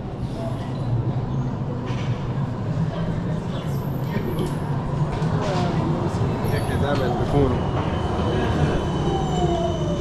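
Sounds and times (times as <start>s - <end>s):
tram rumbling: 0.0s - 10.0s.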